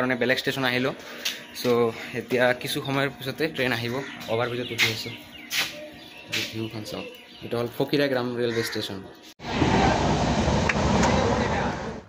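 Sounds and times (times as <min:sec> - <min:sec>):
passenger train running: 0:09.4 - 0:12.0.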